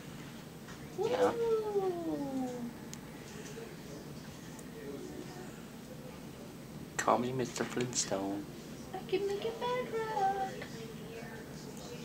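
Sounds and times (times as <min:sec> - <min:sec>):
woman saying yeah: 0:01.0 - 0:02.7.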